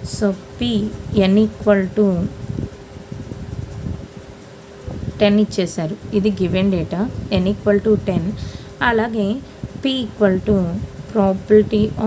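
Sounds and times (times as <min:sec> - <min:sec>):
low fan hum: 0:00.0 - 0:12.0.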